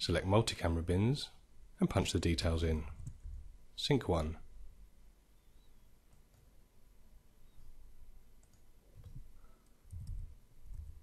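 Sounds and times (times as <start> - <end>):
computer mouse clicks: 8.4 - 10.9.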